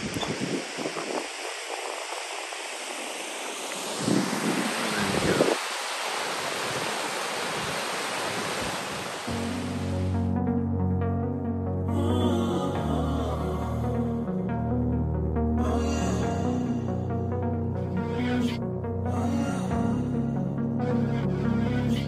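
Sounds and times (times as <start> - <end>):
wind gusts on microphone: 0.0 - 9.5
waterfall rushing: 0.0 - 10.1.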